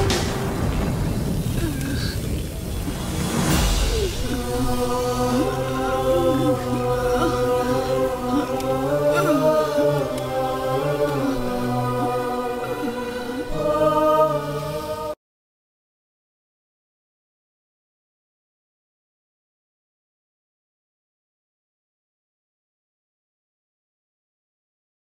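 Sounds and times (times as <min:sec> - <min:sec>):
low rumbling swell: 0:00.0 - 0:15.1
chanted choral voices: 0:00.0 - 0:15.2
low drone: 0:00.0 - 0:15.2.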